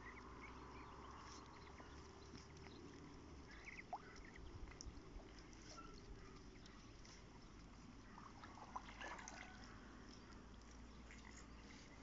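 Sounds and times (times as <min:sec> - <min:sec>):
water splashes and drips: 0:00.1 - 0:12.0.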